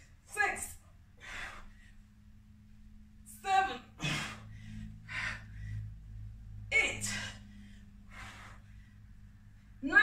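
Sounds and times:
woman breathing hard: 0:01.0 - 0:02.5, 0:04.0 - 0:06.4, 0:07.0 - 0:09.8.

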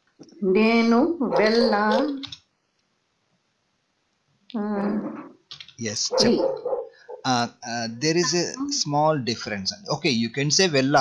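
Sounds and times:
person speaking: 0:00.4 - 0:02.4, 0:05.8 - 0:06.6, 0:07.3 - 0:11.0.

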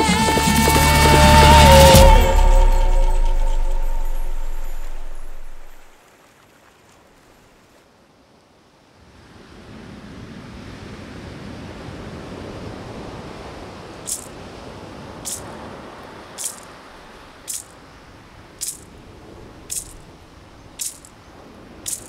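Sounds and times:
iron bell strikes: 0:00.0 - 0:05.9
surf washing over wet sand: 0:09.0 - 0:22.0.

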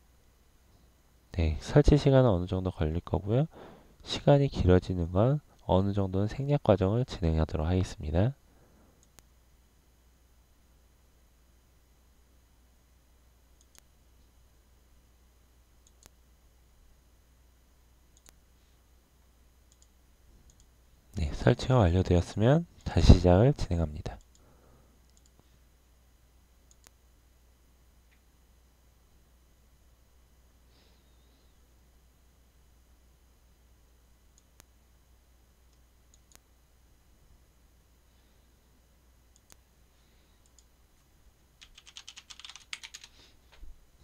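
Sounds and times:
faint low hum: 0:00.0 - 0:44.0
computer mouse clicks: 0:09.0 - 0:09.3, 0:13.6 - 0:13.9, 0:15.8 - 0:16.2, 0:18.2 - 0:18.4, 0:19.7 - 0:20.7, 0:25.1 - 0:25.4, 0:26.7 - 0:27.0, 0:35.7 - 0:36.4, 0:39.3 - 0:39.6, 0:40.4 - 0:40.7.

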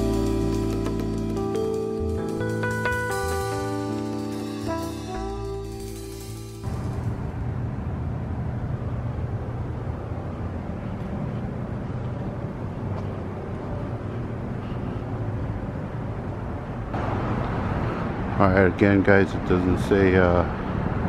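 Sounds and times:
low droning hum: 0:04.7 - 0:18.9.

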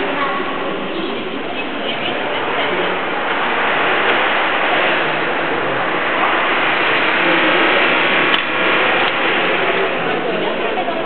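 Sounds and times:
background hubbub: 0:00.0 - 0:11.0.

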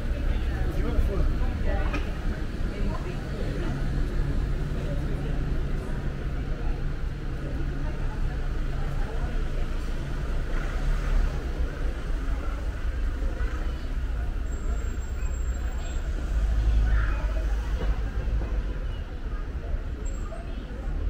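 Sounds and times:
people talking: 0:00.0 - 0:21.0
traffic rumble: 0:00.0 - 0:21.0.

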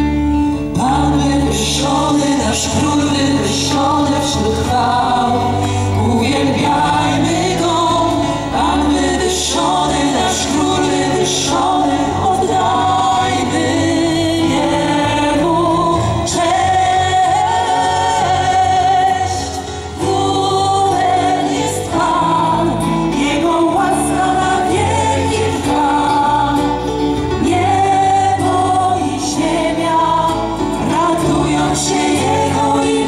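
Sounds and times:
band with steady bass line: 0:00.0 - 0:33.0
group of voices singing: 0:00.0 - 0:33.0.

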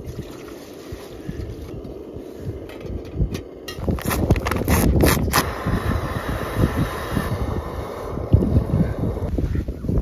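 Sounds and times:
wind buffeting microphone: 0:01.1 - 0:10.0.

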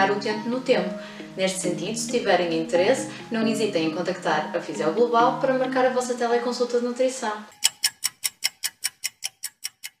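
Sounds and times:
clock ticking: 0:07.5 - 0:10.0.

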